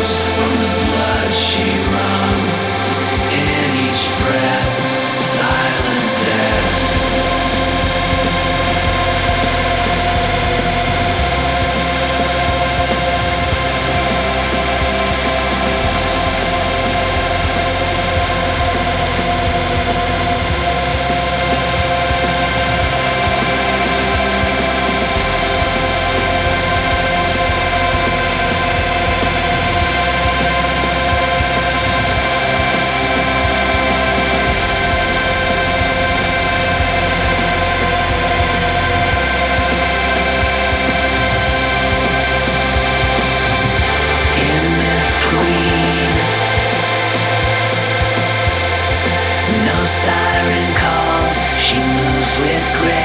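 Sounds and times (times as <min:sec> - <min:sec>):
low bass notes: 0:00.0 - 0:53.0
sustained guitar drone: 0:00.0 - 0:53.0.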